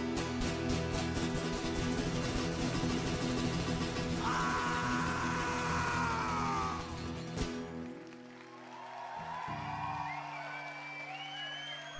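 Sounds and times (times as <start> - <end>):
acoustic guitars sustained chord: 0.0 - 8.3.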